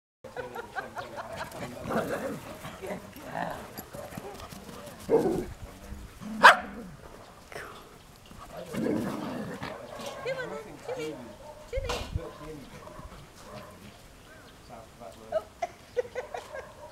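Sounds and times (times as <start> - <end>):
dogs barking: 6.2 - 7.2, 9.4 - 14.5, 16.0 - 16.9.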